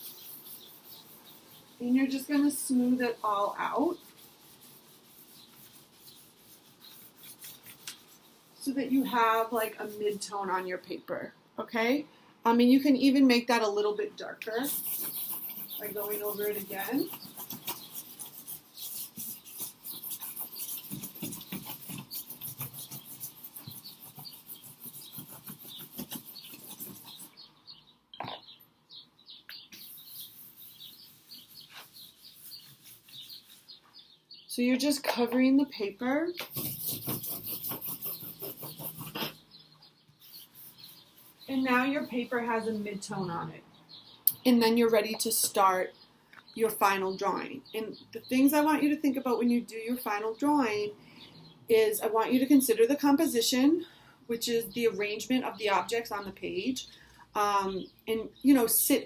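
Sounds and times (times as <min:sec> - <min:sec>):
cloth rubbing on paper: 0:00.0 - 0:10.3, 0:14.5 - 0:27.3, 0:29.8 - 0:34.0, 0:36.4 - 0:39.4, 0:40.2 - 0:42.7.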